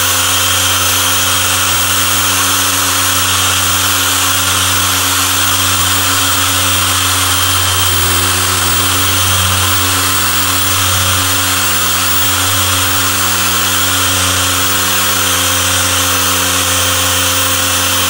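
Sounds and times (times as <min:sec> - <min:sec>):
polisher motor humming: 0:00.0 - 0:18.0.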